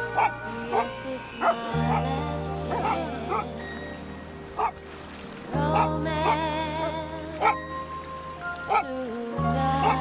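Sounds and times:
background music: 0:00.0 - 0:10.0
dog barking: 0:02.7 - 0:03.5, 0:04.6 - 0:04.8, 0:05.8 - 0:06.4, 0:07.4 - 0:07.6, 0:08.7 - 0:08.9.

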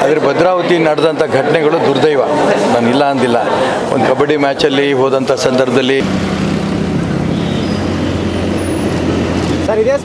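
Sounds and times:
vehicle engine running: 0:06.0 - 0:09.8.

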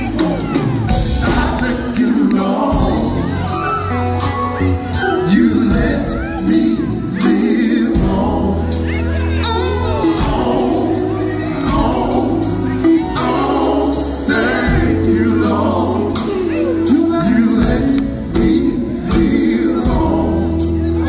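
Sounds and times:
drums beating: 0:00.0 - 0:08.8, 0:10.0 - 0:21.0
electric bass: 0:00.0 - 0:21.0
keyboard: 0:00.0 - 0:21.0
person singing: 0:00.0 - 0:21.0.

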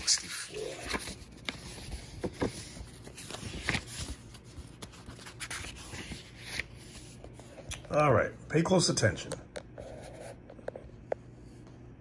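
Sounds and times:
book pages rustling: 0:00.0 - 0:08.1.

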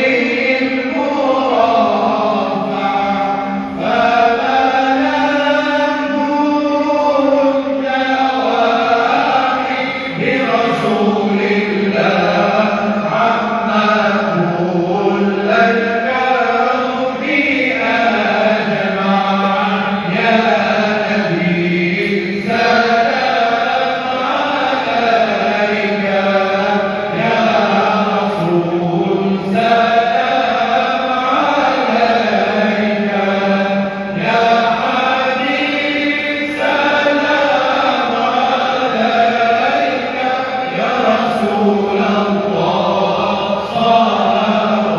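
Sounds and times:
slow chanted singing: 0:00.0 - 0:44.9.

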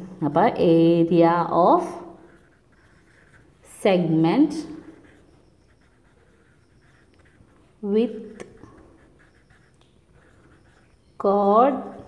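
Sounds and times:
person speaking: 0:00.0 - 0:05.2, 0:06.0 - 0:12.0
marker writing on paper: 0:00.6 - 0:12.0.

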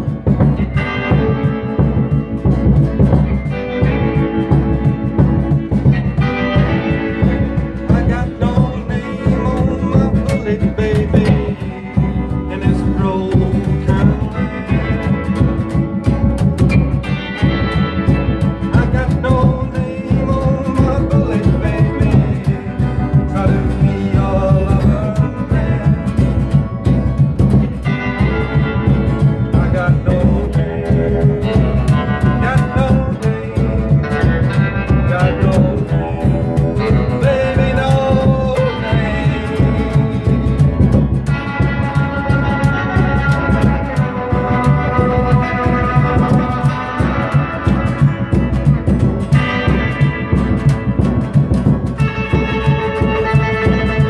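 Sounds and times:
electric lead guitar: 0:00.0 - 0:54.0
strummed acoustic guitar: 0:00.0 - 0:54.0
upright double bass: 0:00.0 - 0:54.0
man singing: 0:03.6 - 0:27.2, 0:27.8 - 0:50.7, 0:51.9 - 0:54.0.

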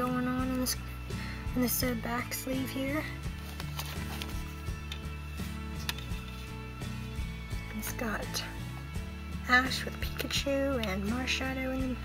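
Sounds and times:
background music with low notes: 0:00.0 - 0:12.0
plastic case clicking: 0:05.8 - 0:06.4.

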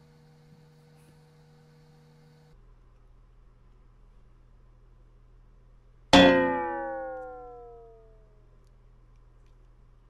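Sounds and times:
metallic clang ringing: 0:06.2 - 0:08.1.

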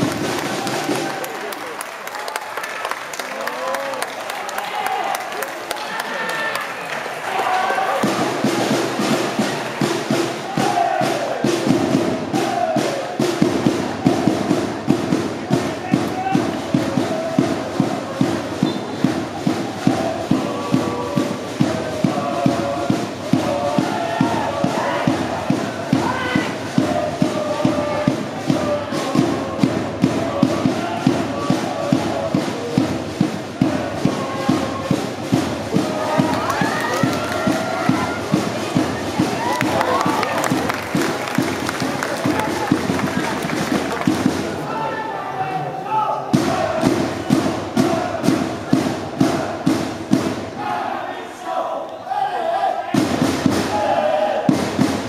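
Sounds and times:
football supporters chanting: 0:06.8 - 0:55.0
bass drum beat: 0:08.0 - 0:44.6.

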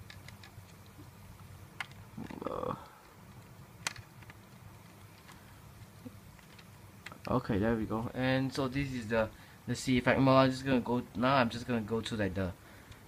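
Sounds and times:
plastic parts clicking and tapping: 0:00.0 - 0:07.4
murmured voice: 0:02.2 - 0:03.0.

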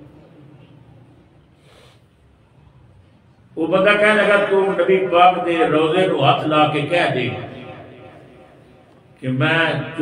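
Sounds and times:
faint room noise: 0:00.0 - 0:04.5
breath drawn in: 0:01.6 - 0:02.2
man's voice: 0:03.6 - 0:08.2, 0:09.2 - 0:10.0.

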